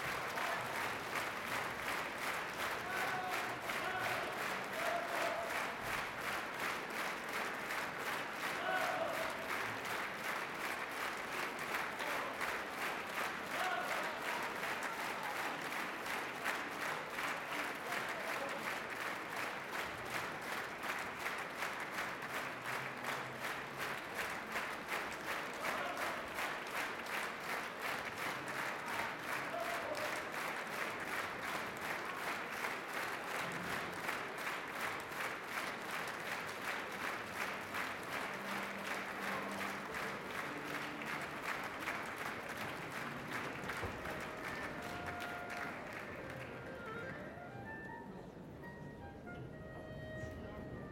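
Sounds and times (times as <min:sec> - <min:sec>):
audience applauding: 0:00.0 - 0:47.9.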